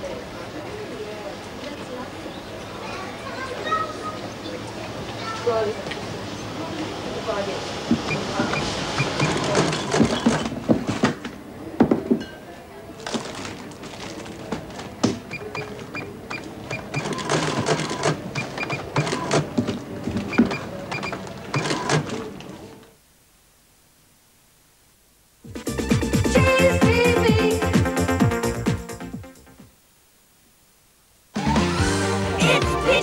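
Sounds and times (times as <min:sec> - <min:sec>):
goods clattering at checkout: 0:07.9 - 0:12.4, 0:13.0 - 0:22.6
short high beeps: 0:08.1 - 0:09.5
background music: 0:25.5 - 0:29.7, 0:31.4 - 0:33.0
murmuring voices: 0:32.2 - 0:33.0.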